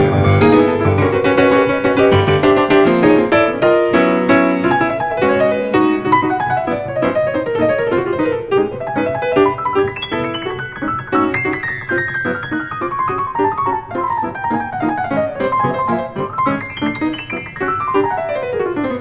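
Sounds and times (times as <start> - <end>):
jazz piano improvisation: 0.0 - 19.0.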